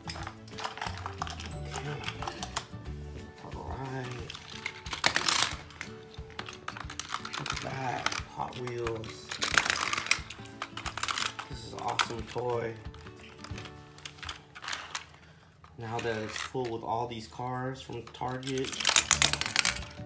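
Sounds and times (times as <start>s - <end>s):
toy cars clicking and rattling: 0.0s - 2.8s, 3.8s - 16.9s, 17.9s - 20.0s
background music: 0.0s - 20.0s.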